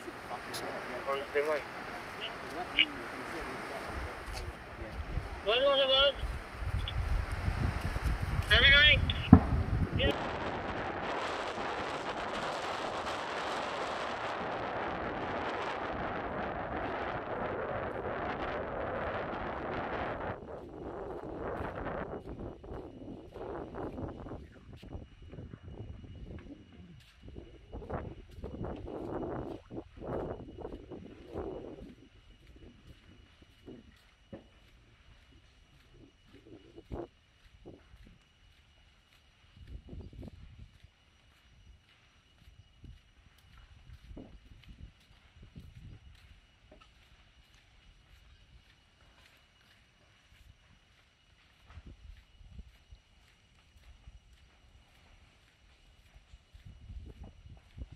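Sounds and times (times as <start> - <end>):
fire crackling and popping: 0.0 - 24.1
fire roaring: 0.0 - 24.1.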